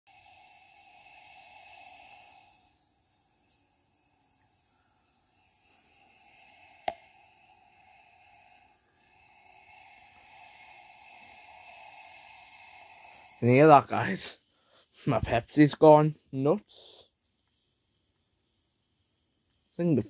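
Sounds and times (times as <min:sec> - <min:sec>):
soda fizzing: 0:00.1 - 0:14.3.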